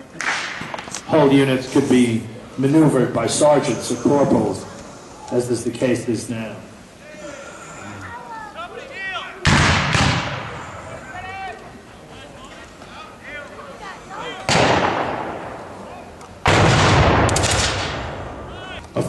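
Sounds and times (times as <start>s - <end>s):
blank gunshots: 9.4s - 10.5s, 14.5s - 15.6s, 16.4s - 18.4s.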